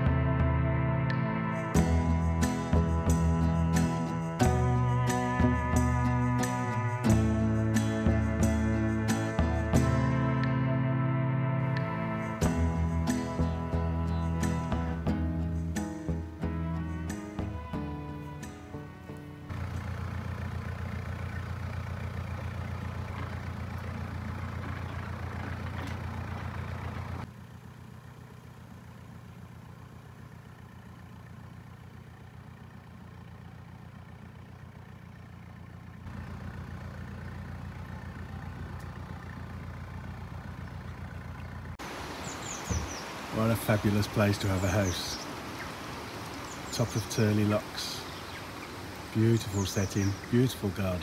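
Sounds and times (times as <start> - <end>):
background music: 0.0 - 19.6
diesel boat engine running: 0.0 - 51.0.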